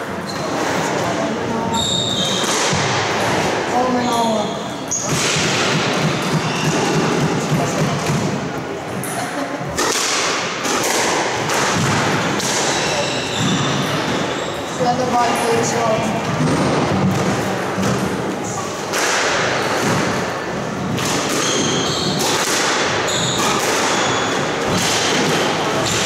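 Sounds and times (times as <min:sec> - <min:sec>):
rackets striking squash ball: 0:00.0 - 0:26.0.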